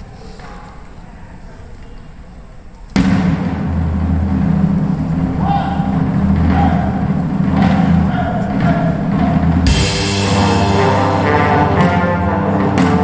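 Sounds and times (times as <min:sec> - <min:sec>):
brass ensemble with drums: 0:03.0 - 0:13.0.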